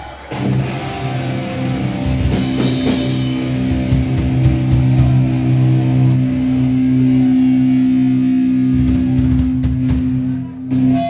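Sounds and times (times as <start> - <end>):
distorted guitar and bass chord: 0.3 - 11.0.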